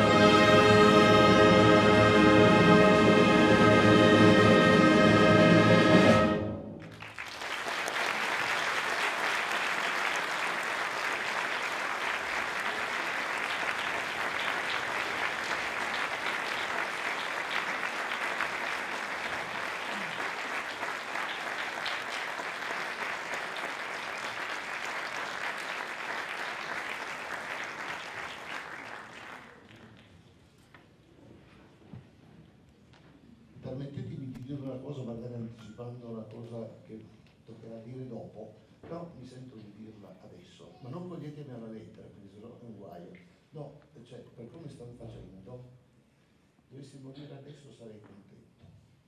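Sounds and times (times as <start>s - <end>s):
audience applauding: 6.8s - 30.1s.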